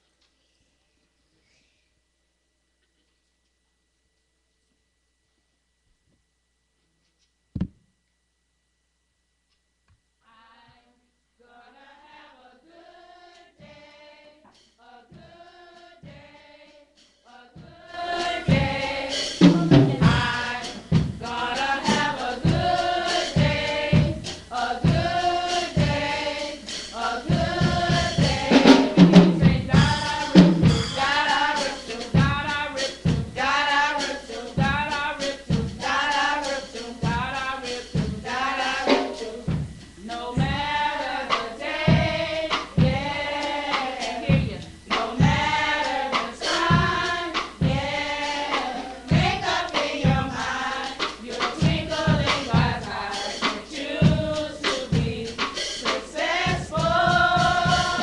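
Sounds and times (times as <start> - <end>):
youth choir singing gospel: 10.3 - 58.0
steady low beat: 17.6 - 35.8, 38.0 - 55.4.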